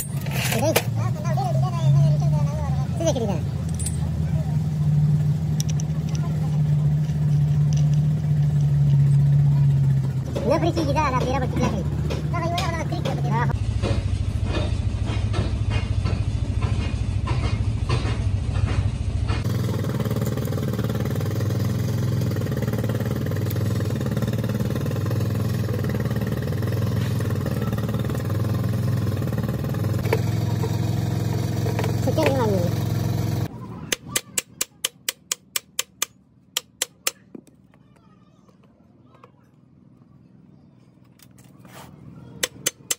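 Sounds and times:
low mechanical hum: 0.0s - 42.9s
tool tapping on metal: 33.9s - 37.6s, 42.4s - 42.9s.

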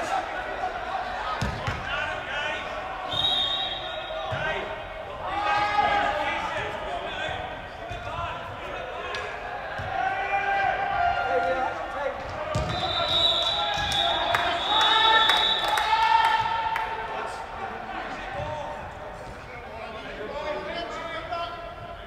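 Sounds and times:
players calling echoing: 0.0s - 22.0s.

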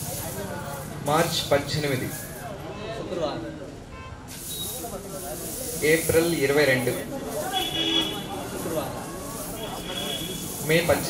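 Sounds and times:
faint voices: 0.0s - 11.0s
steady hiss: 4.4s - 11.0s.

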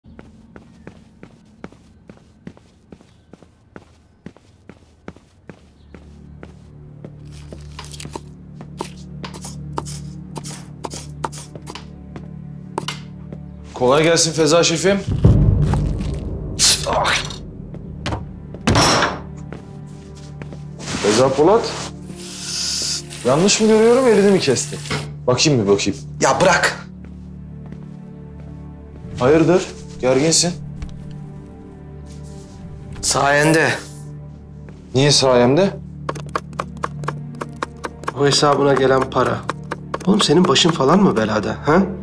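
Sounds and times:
footsteps on stone stairs: 0.0s - 13.6s, 15.0s - 21.0s, 26.4s - 33.3s, 35.8s - 41.5s
low drone background score: 15.0s - 20.8s
loud thunk: 18.0s - 19.3s.

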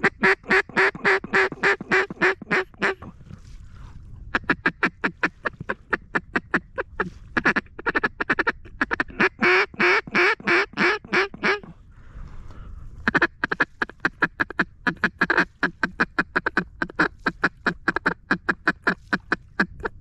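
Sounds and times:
duck call quacking: 0.0s - 3.1s, 4.3s - 11.7s, 13.0s - 20.0s.

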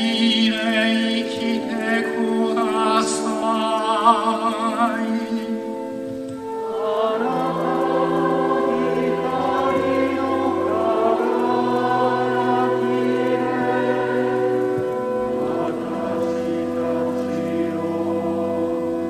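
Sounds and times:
choir singing sustained chords: 0.0s - 19.0s.

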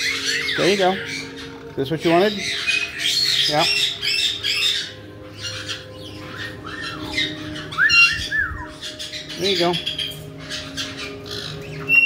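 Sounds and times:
parrots squawking: 0.0s - 12.0s
parrot whistled notes: 2.1s - 12.0s.

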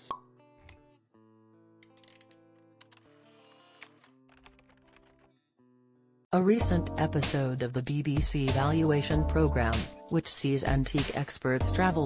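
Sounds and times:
soft music: 6.4s - 12.0s.

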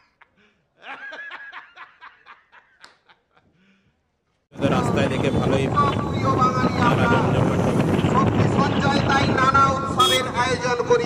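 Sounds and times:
man laughing: 0.0s - 3.6s.

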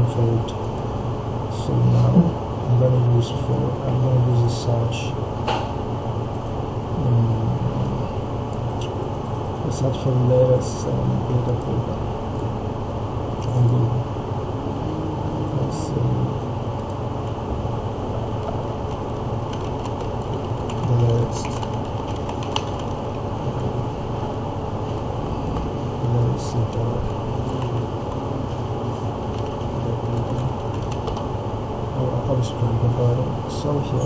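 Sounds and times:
steady low hum: 0.0s - 34.0s
keyboard keys tapping: 18.4s - 23.1s, 26.6s - 28.6s, 29.2s - 31.3s.

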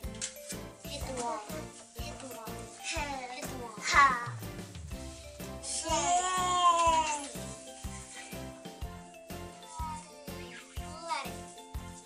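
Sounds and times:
background music with beat: 0.0s - 12.0s
child squealing: 5.9s - 7.3s.

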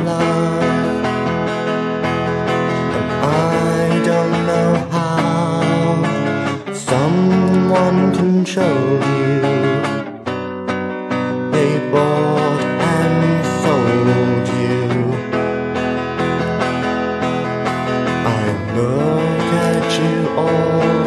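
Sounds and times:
electric guitar lead with bent notes: 0.0s - 21.0s
sustained guitar chords: 0.0s - 21.0s.

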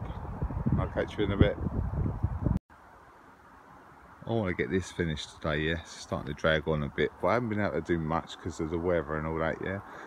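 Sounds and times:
wind noise on microphone: 0.0s - 2.6s.

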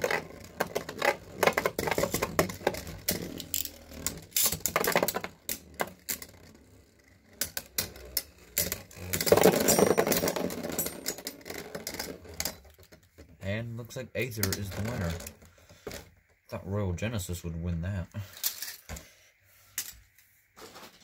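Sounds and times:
spinning tops clicking and rattling: 0.0s - 12.7s.

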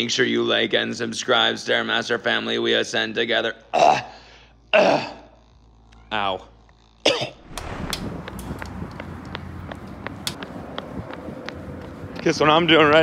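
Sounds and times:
wind on microphone: 7.4s - 12.2s.

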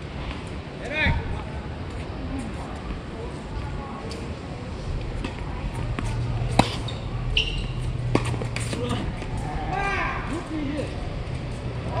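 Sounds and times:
tennis ball struck by racket: 5.2s - 7.0s, 7.6s - 9.4s.

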